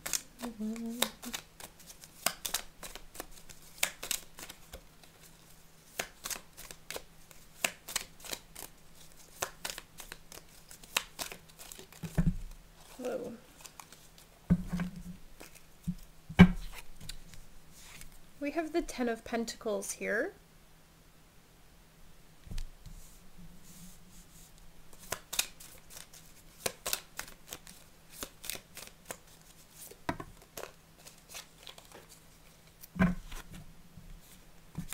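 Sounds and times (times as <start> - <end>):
cards being shuffled: 0.0 - 15.7, 16.5 - 18.2, 24.9 - 33.6.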